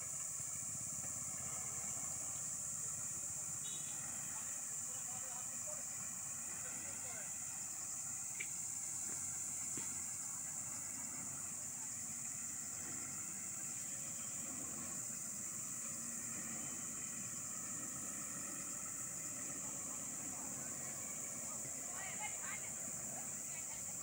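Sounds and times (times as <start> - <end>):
distant truck engine: 0.0 - 24.0
steady high-pitched hiss: 0.0 - 24.0.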